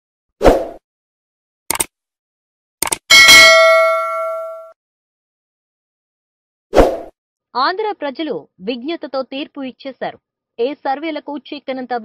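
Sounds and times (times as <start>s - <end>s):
short clicks: 1.7s - 1.9s, 2.8s - 3.0s
bell ding: 3.1s - 4.7s.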